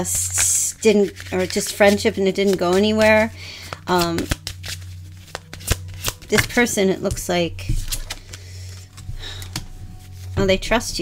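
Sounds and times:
cards clicking and snapping: 0.2 - 9.7.

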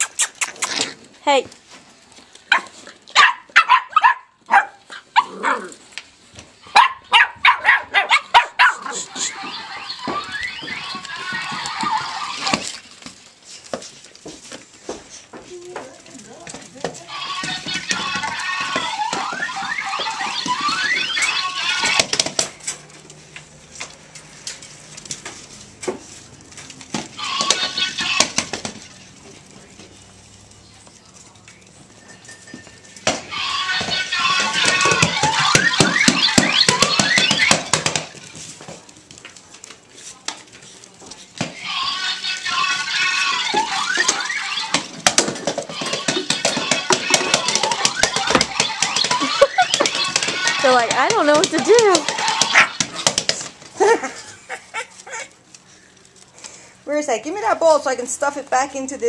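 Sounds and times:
puppies yapping: 2.4 - 5.8, 6.6 - 13.0, 17.2 - 22.2, 33.4 - 38.4, 41.6 - 55.6
puppies squealing: 6.9 - 12.8, 17.2 - 22.2, 33.4 - 38.1, 41.8 - 53.2.

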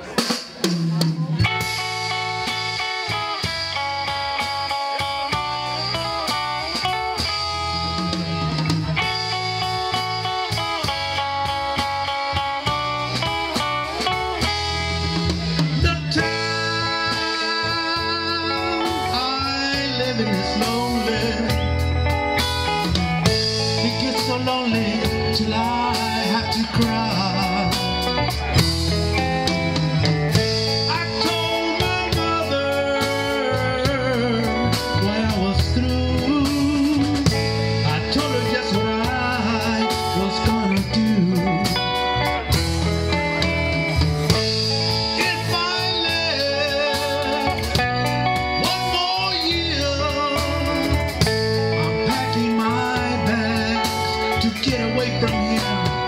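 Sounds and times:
live band playing pop song: 0.0 - 56.0.

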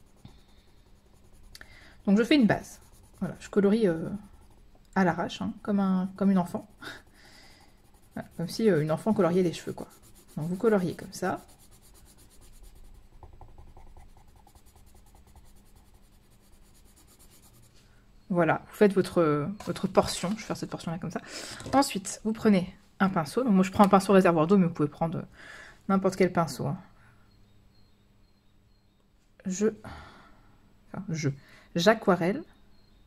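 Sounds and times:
pencil scratching on paper: 0.0 - 5.4, 6.1 - 17.8.

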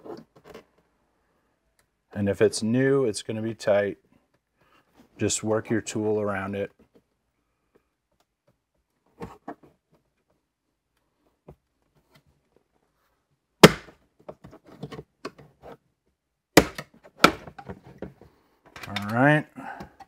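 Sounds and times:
plastic tabs clicking: 18.8 - 19.2.

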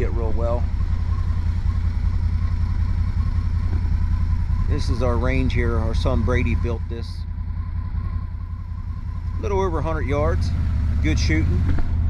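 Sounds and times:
utility vehicle engine running: 0.0 - 12.0.

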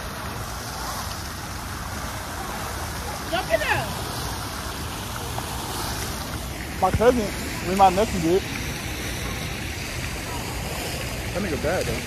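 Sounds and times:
fountain water splashing: 0.0 - 12.0.

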